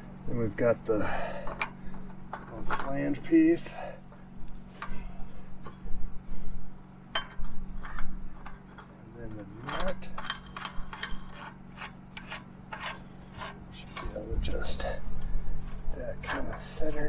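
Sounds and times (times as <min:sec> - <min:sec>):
steady low hum: 0:00.0 - 0:17.0
metal parts scraping and clicking: 0:07.1 - 0:17.0.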